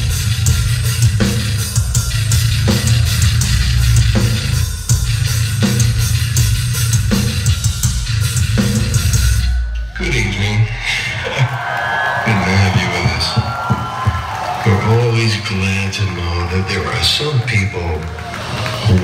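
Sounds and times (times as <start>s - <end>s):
crowd noise: 0.0s - 7.5s, 8.2s - 19.0s
pounding drums: 0.0s - 11.3s, 12.6s - 14.6s
metal band playing loud: 0.0s - 15.1s
man speaking over pa: 9.9s - 11.5s, 12.1s - 13.6s, 14.6s - 18.0s.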